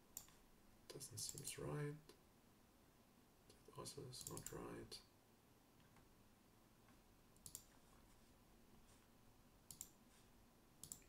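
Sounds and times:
faint computer mouse clicks: 0:00.2 - 0:00.4, 0:04.2 - 0:04.6, 0:07.4 - 0:07.8, 0:09.7 - 0:10.0, 0:10.8 - 0:11.0.

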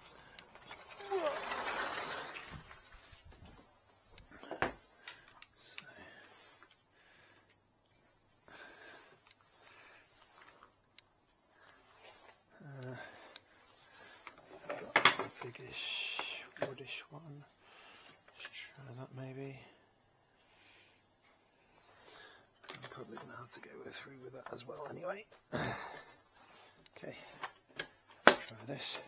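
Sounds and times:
sliding door scraping and squeaking: 0:00.0 - 0:03.8.

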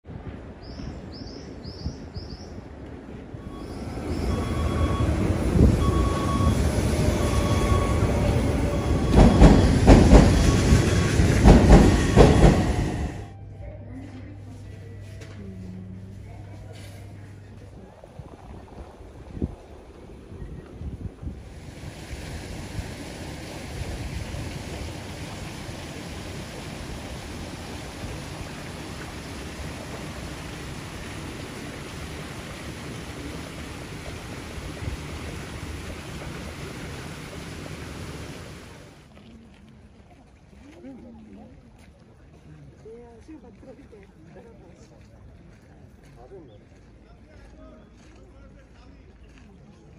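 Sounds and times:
wind blowing: 0:00.0 - 0:13.3, 0:15.8 - 0:39.0.

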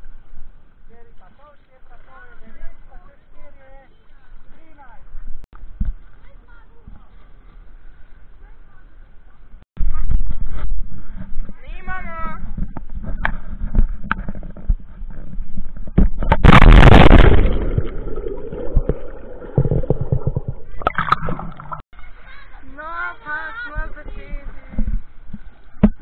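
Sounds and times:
wind rumble on microphone: 0:09.8 - 0:21.8
loud splash into water: 0:16.2 - 0:21.8
muffled underwater gurgling: 0:16.4 - 0:21.8.

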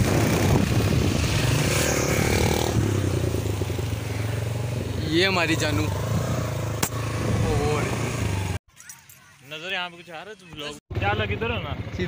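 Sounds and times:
wind on microphone: 0:00.0 - 0:06.5
motorcycle engine running: 0:00.0 - 0:08.6.

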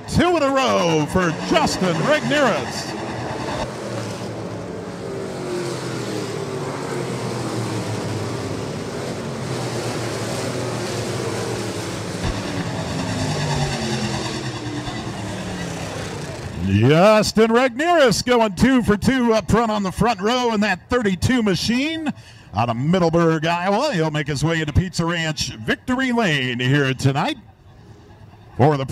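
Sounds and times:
race car engines passing: 0:00.0 - 0:21.9.

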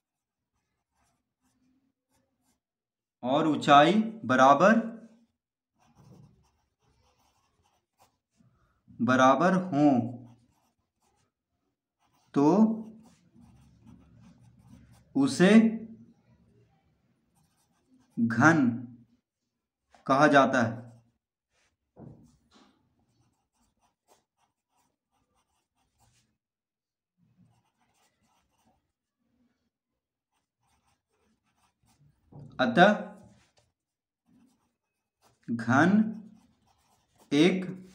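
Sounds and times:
pencil scratching on paper: 0:00.0 - 0:02.7, 0:03.6 - 0:26.4, 0:27.2 - 0:37.9.

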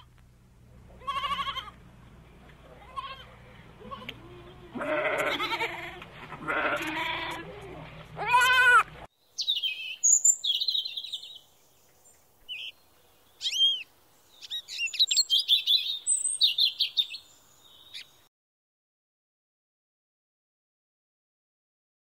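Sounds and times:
goat bleating: 0:00.9 - 0:01.8, 0:02.6 - 0:09.1
robin singing: 0:09.1 - 0:18.3.

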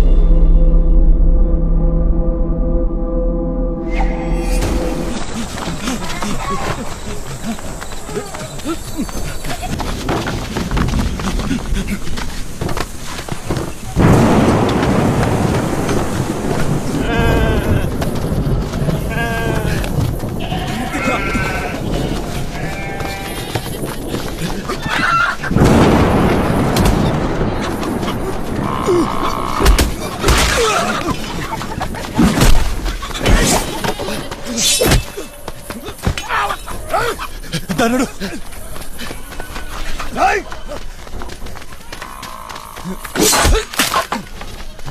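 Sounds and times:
soundtrack music: 0:00.0 - 0:05.6
low rumble: 0:00.0 - 0:06.1
animal bleating: 0:20.4 - 0:23.8.

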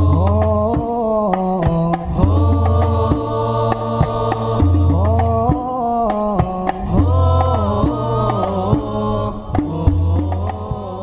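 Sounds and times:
person singing ornamented melody: 0:00.0 - 0:11.0.

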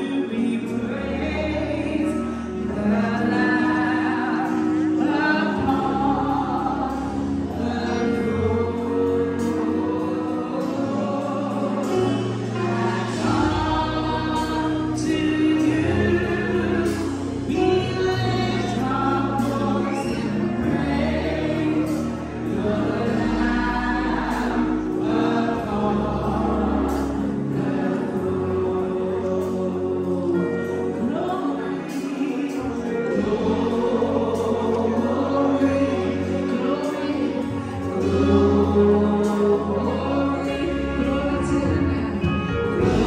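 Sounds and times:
electronic keyboard accompaniment: 0:00.0 - 0:43.0
group singing gospel song: 0:00.0 - 0:43.0.

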